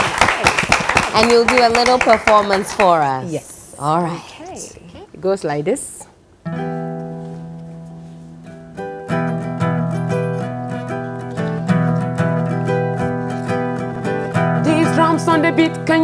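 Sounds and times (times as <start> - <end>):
acoustic guitar strumming: 6.4 - 16.0
woman singing: 14.6 - 16.0.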